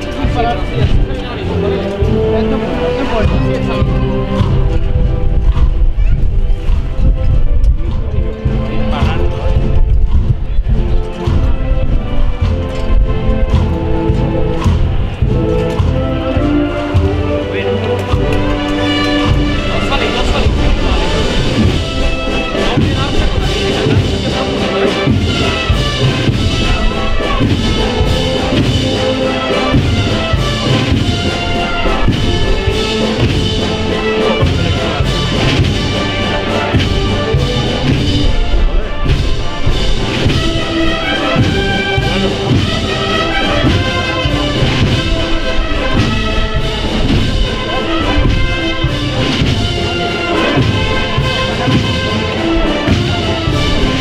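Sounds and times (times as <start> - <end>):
brass melody: 0.0 - 54.0
marching wind band playing: 0.0 - 54.0
steady low drum beat: 0.0 - 54.0.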